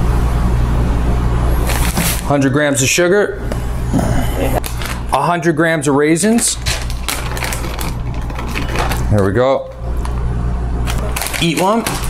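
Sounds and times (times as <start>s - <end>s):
bag rustling: 10.8s - 12.0s.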